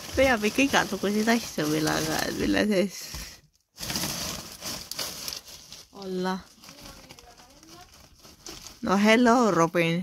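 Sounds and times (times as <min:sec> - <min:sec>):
plastic wrappers rustling: 0:00.0 - 0:10.0.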